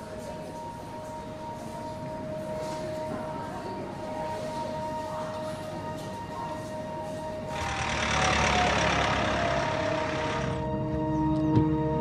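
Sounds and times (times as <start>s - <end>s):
background music drone: 0.0s - 12.0s.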